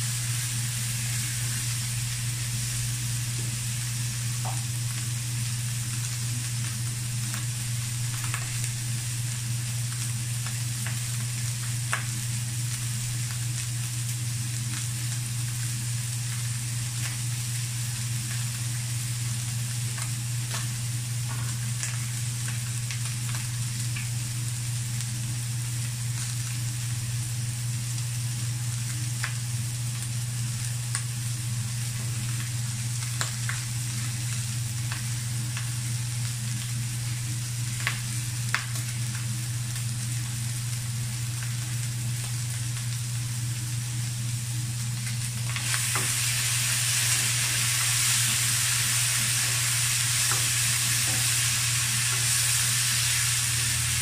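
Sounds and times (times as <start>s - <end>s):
meat sizzling in a wok: 0.0s - 54.0s
steady low hum: 0.0s - 54.0s.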